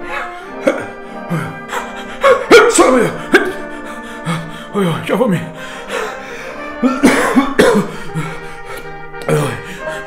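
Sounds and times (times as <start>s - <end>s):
background music: 0.0s - 10.0s
man coughing and gasping: 0.4s - 4.5s, 5.9s - 8.7s.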